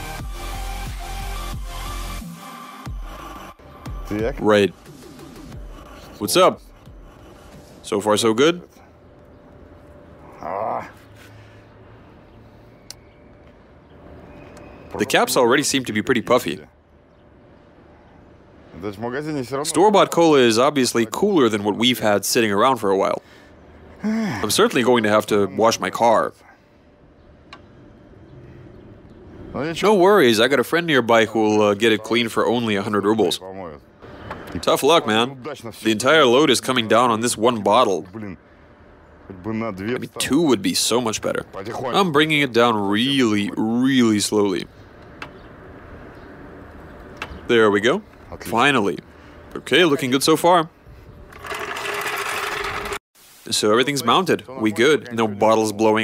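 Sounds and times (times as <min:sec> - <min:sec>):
outdoor background noise: 0:00.0 - 0:56.0.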